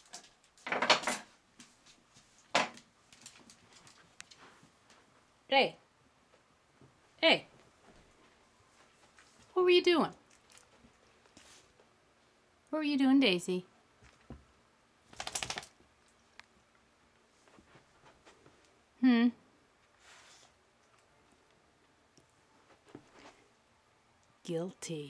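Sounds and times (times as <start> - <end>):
dog claws clicking on tile: 15.1 - 15.8.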